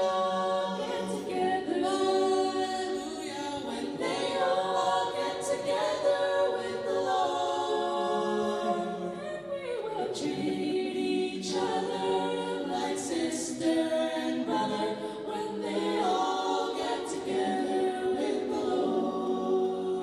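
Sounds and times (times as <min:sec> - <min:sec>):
choir singing a cappella: 0:00.0 - 0:20.0.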